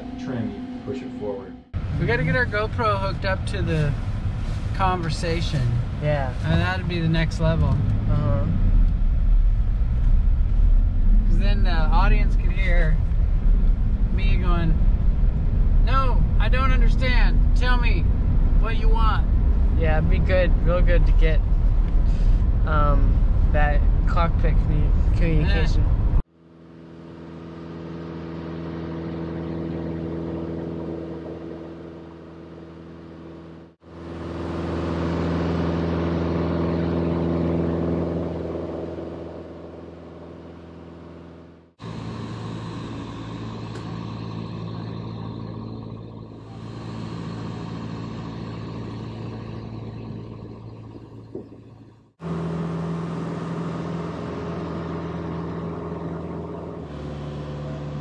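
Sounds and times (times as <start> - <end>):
airplane engine droning: 0.0 - 24.0, 24.9 - 58.0.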